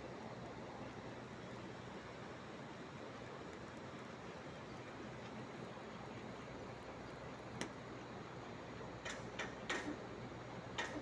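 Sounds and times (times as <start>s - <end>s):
faint steady hiss: 0.0s - 11.0s
sharp welding ticks: 9.0s - 10.0s, 10.7s - 11.0s.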